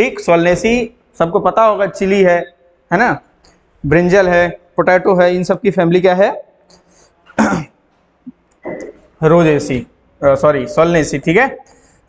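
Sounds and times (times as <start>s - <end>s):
man clearing throat: 7.3s - 7.8s.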